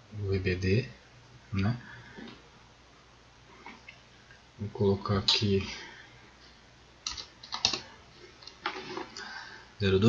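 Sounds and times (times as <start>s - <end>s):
keyboard keystrokes: 7.0s - 7.8s.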